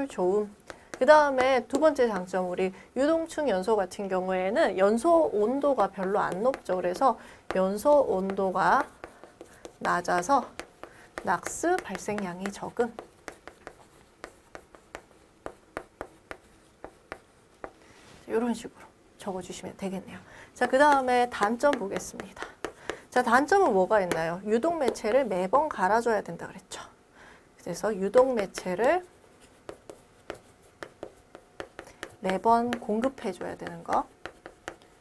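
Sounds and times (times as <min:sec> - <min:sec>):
chalk tapping and scraping on chalkboard: 0:00.0 - 0:02.6, 0:05.2 - 0:18.2, 0:20.6 - 0:25.4, 0:28.0 - 0:35.0.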